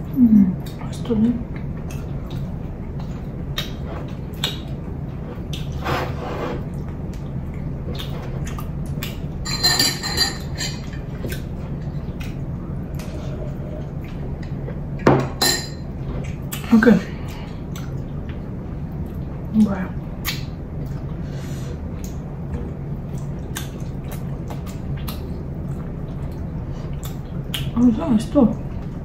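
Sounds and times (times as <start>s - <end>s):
steady low hum: 0.0s - 29.0s
dishes clinking: 9.4s - 11.0s, 15.0s - 15.9s.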